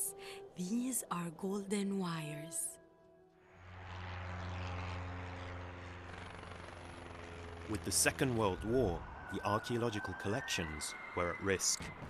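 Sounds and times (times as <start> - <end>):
propeller aircraft engines droning: 3.2 - 12.0.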